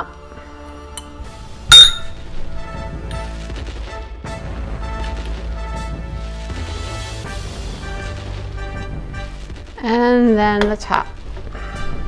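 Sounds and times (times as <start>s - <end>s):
background music: 0.0s - 12.0s
metal tubes clinking: 1.7s - 2.2s.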